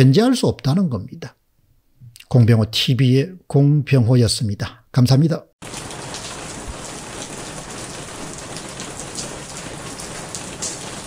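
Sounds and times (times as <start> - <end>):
individual raindrops hitting: 5.6 - 11.0
steady rain falling: 5.6 - 11.0.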